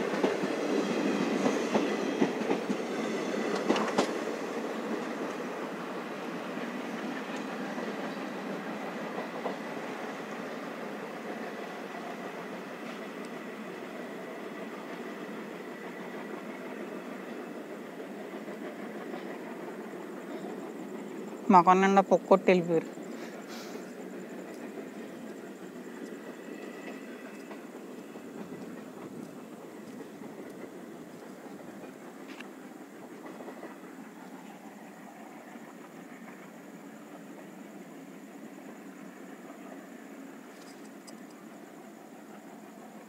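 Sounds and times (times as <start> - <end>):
train wheels rumbling on track: 0.0 - 43.0
faint track clicks: 24.4 - 24.7, 26.8 - 32.6.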